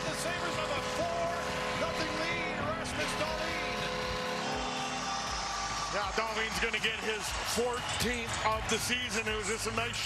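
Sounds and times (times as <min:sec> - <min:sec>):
goal horn: 0:00.0 - 0:05.6
crowd cheering: 0:00.0 - 0:10.0.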